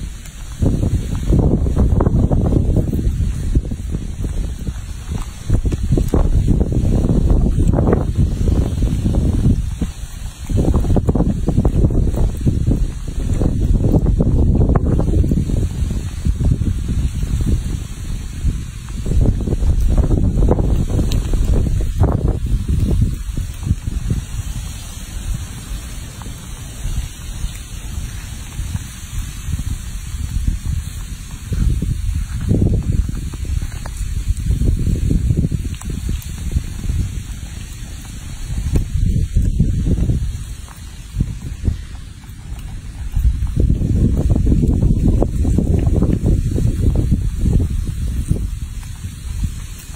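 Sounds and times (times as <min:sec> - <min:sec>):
wind buffeting microphone: 0:00.0 - 0:49.9.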